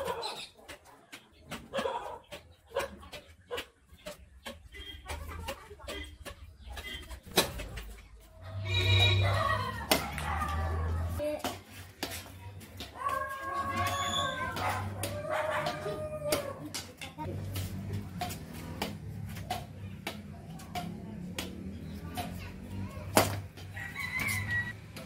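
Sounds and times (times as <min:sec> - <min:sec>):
voices calling out: 0:00.0 - 0:25.0
racket hitting shuttlecock: 0:00.1 - 0:08.0, 0:08.7 - 0:25.0.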